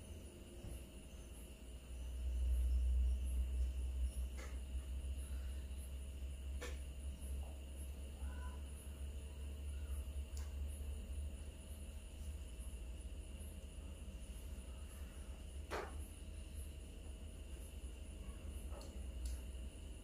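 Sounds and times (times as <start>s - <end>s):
faint high pulsing chirping: 0.0s - 6.4s, 7.1s - 15.5s
steady low hum: 0.0s - 20.0s.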